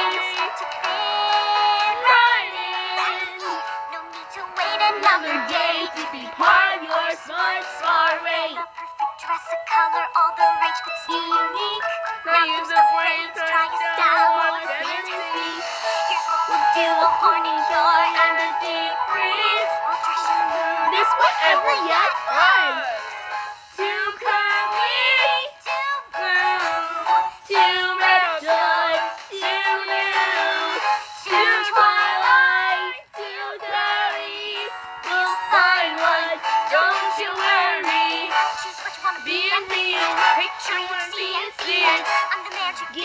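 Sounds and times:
instrumental backing music: 0:00.0 - 0:43.0
person singing: 0:00.0 - 0:43.0
woman singing high notes: 0:16.6 - 0:19.7, 0:20.9 - 0:23.0.

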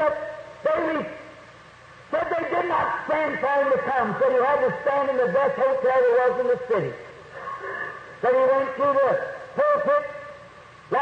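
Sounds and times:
man preaching: 0:00.0 - 0:01.4, 0:02.1 - 0:07.1, 0:08.2 - 0:11.0
steady background hiss: 0:00.0 - 0:11.0.

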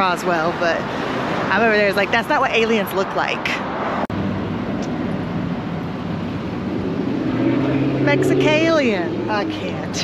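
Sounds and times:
road noise: 0:00.0 - 0:10.0
vehicle engine hum: 0:00.4 - 0:10.0.

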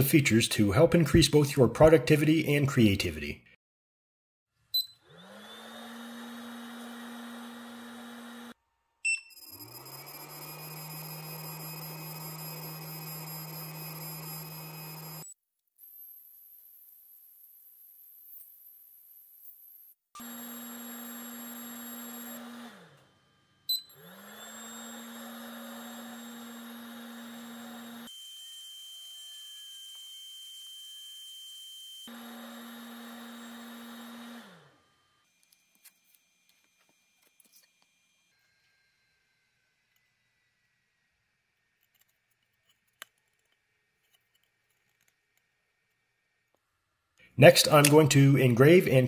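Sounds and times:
laser engraver electric hum: 0:09.4 - 0:15.2, 0:20.2 - 0:29.3, 0:32.1 - 0:40.8
sharp click: 0:47.7 - 0:48.1.

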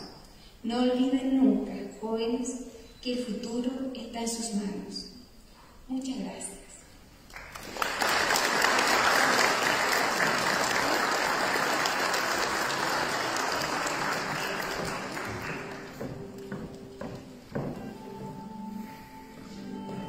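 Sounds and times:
audience applauding: 0:07.3 - 0:16.8.

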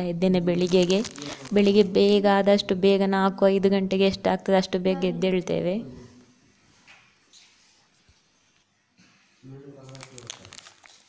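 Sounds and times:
small crackling clicks: 0:09.8 - 0:11.0.

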